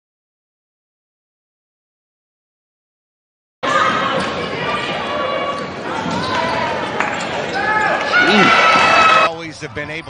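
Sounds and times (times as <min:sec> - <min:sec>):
sneakers squeaking on hardwood: 0:03.9 - 0:08.5.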